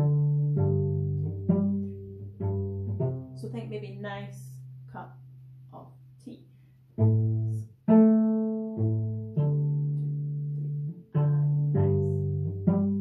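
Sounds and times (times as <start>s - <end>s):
bowed cello phrase: 0.0s - 4.7s, 7.0s - 13.0s.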